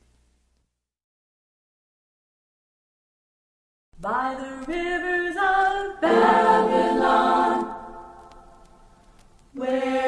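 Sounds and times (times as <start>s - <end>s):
voices singing in harmony: 4.0s - 8.7s, 9.5s - 10.0s.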